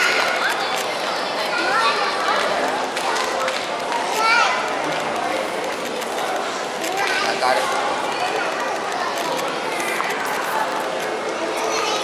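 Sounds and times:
indistinct crowd chatter: 0.0s - 12.0s.

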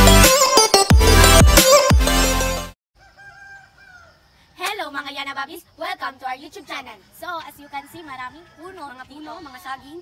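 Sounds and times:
rooster crowing: 3.0s - 4.4s, 7.4s - 9.6s
girl speaking: 4.6s - 10.0s.

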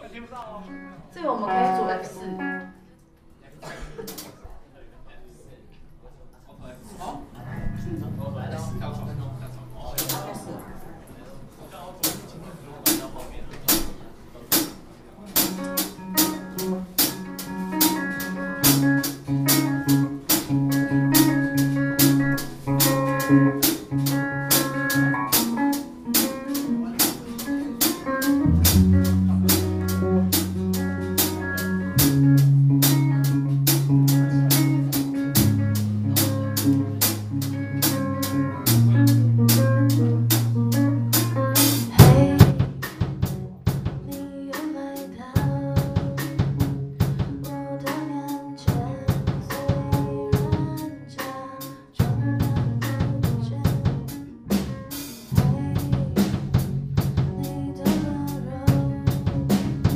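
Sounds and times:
guitar chords: 0.7s - 2.9s, 7.4s - 10.9s, 15.4s - 44.3s
electric bass: 7.4s - 10.4s, 15.4s - 44.1s, 52.0s - 59.9s
drums beating: 7.5s - 10.9s, 12.0s - 44.7s, 45.4s - 48.0s, 48.7s - 51.3s, 52.0s - 59.9s.

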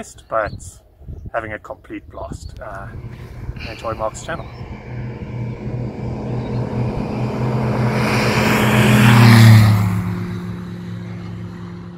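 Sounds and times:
light aircraft engine and propeller: 2.5s - 11.9s.

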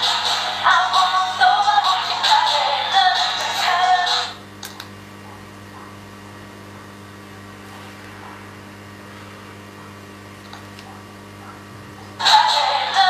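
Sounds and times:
music: 0.0s - 4.4s, 12.2s - 13.0s
low electrical hum: 0.0s - 13.0s.

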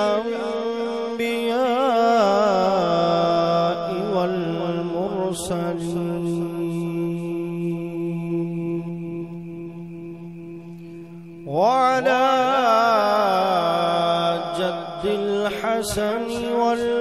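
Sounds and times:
chanting over loudspeaker with echo: 0.0s - 17.0s.

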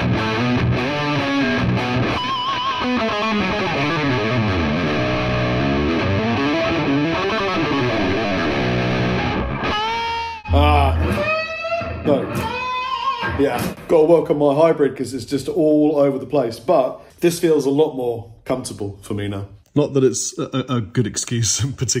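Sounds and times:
distorted electric guitar: 0.0s - 14.0s
short vocal sound: 10.5s - 11.2s.

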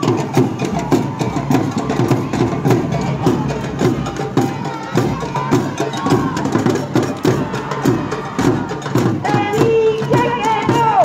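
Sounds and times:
drums and percussion beat: 0.0s - 11.0s.

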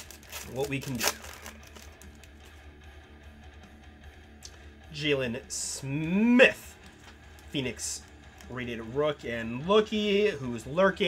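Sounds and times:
foil wrapper crinkling and tearing: 0.0s - 2.5s
faint background guitar music: 0.0s - 11.0s.

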